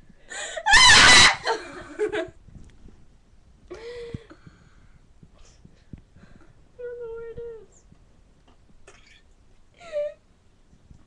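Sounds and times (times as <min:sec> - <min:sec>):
girl shrieking: 0:00.7 - 0:01.5
laughter: 0:01.4 - 0:02.4.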